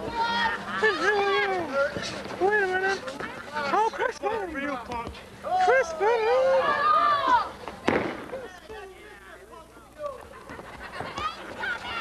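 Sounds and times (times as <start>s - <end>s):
spectators yelling: 5.4s - 7.6s.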